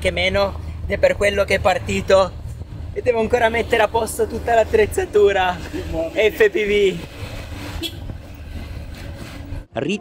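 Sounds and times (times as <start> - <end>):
van engine and road rumble: 0.0 - 10.0.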